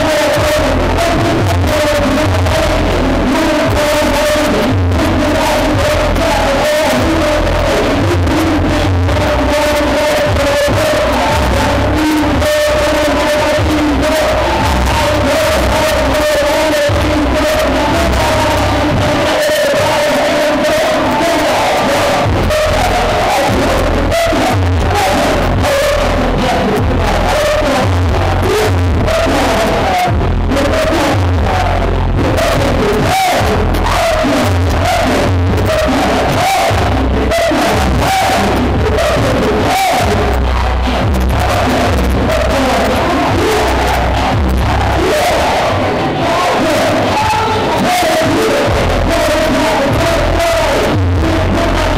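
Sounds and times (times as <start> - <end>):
loud hip-hop music with heavy bass: 0.0 - 51.9
voices shouting or rapping: 0.0 - 51.9.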